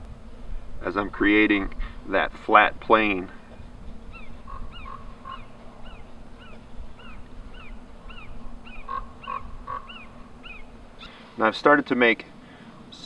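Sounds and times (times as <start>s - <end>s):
animal chirping: 4.1s - 11.2s.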